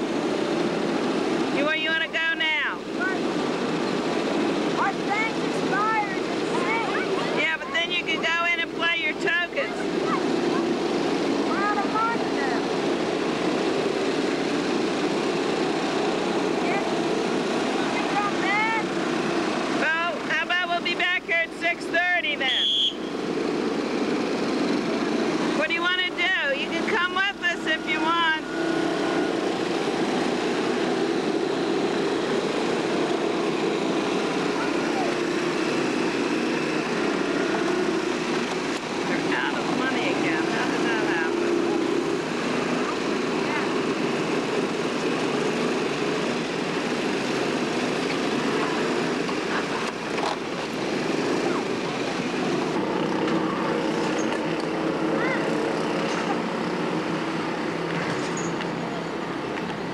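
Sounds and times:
vehicle drone: 0.0 - 59.9
indistinct voices: 1.6 - 13.2.

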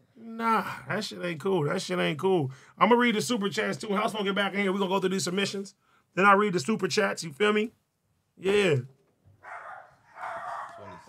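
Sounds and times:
dogs barking: 9.4 - 11.0.

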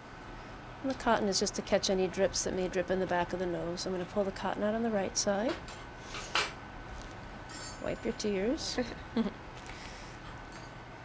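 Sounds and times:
metallic clink: 7.5 - 7.9.

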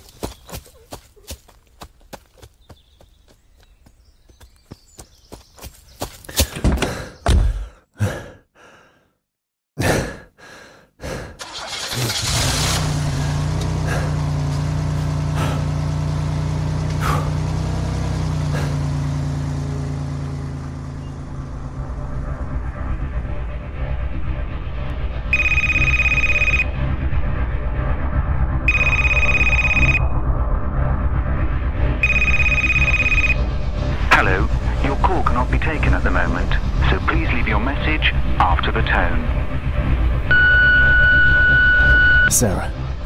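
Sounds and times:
car engine starting and running: 11.1 - 43.0
phone ringing: 25.4 - 26.7, 28.7 - 30.0, 32.0 - 33.4.

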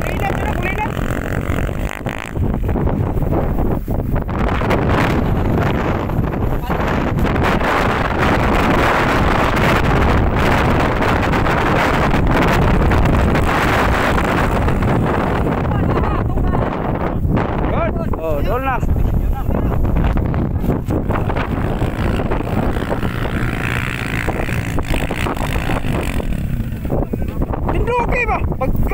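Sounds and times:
dirt bike engines revving: 0.0 - 28.9
wind buffeting microphone: 0.0 - 28.9.

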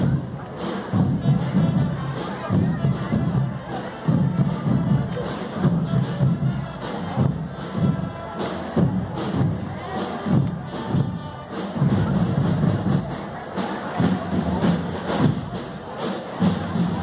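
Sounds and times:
crowd noise: 0.0 - 17.0
heavy drum beat: 0.0 - 17.0
parade band music: 0.0 - 17.0.

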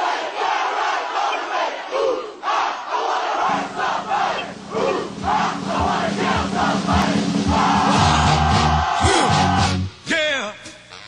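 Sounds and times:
soldiers chanting in unison: 0.0 - 9.8.

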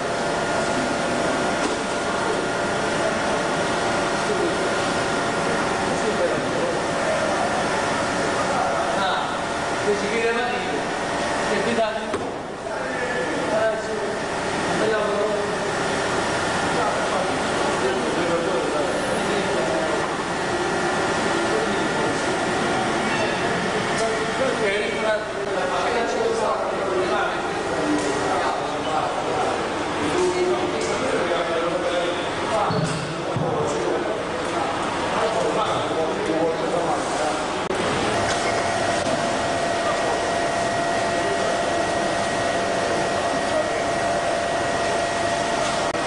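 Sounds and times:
steady hum: 0.0 - 46.0.

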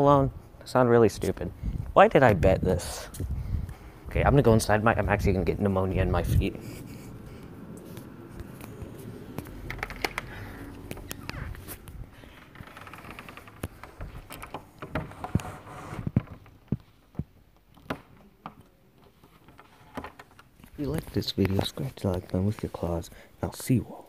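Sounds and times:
clicks and knocks of movement: 7.1 - 22.8.

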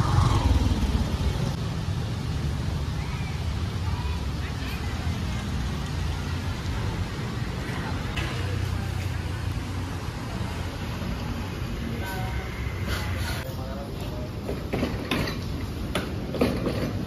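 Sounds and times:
low rumble of road traffic: 0.0 - 17.0.

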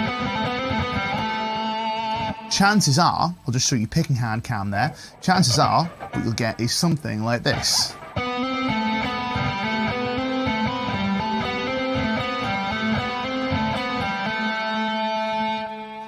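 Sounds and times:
electric guitar legato lick: 0.0 - 2.9, 4.8 - 16.0.

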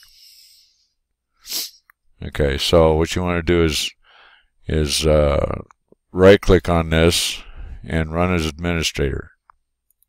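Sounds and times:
man breathing close to microphone: 0.0 - 1.9, 4.0 - 4.6, 7.4 - 7.9
sharp intake of breath: 0.0 - 1.9, 4.0 - 4.6, 7.4 - 7.8.

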